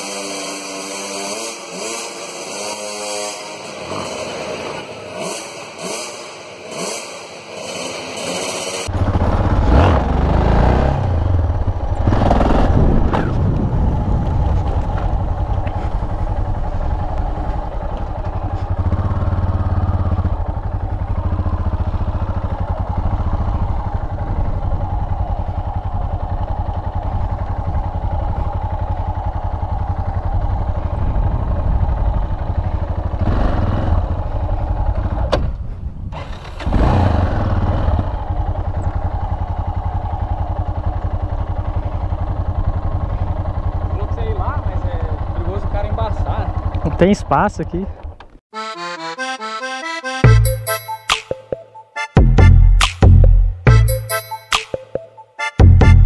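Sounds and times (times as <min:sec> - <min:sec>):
motorcycle engine at low revs: 0:00.0 - 0:48.4.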